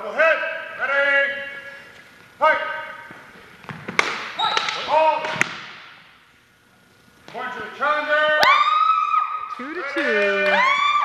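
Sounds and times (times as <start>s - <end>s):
shoe squeaks: 4.4s - 4.9s.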